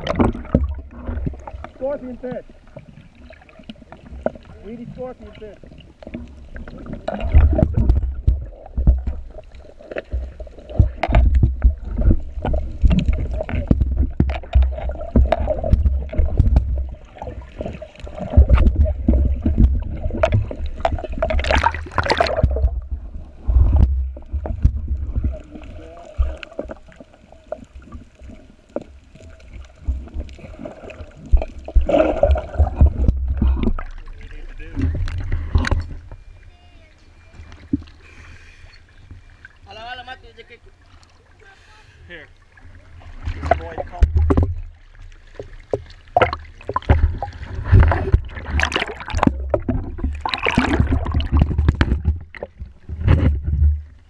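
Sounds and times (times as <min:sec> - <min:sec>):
underwater bubbles gurgling: 0:00.0 - 0:39.6, 0:42.4 - 0:54.0.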